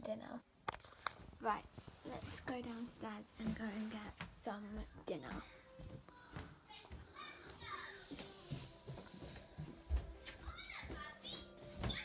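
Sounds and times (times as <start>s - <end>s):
footsteps thudding down stairs: 4.2s - 12.0s
faint high-pitched voices: 4.8s - 12.0s.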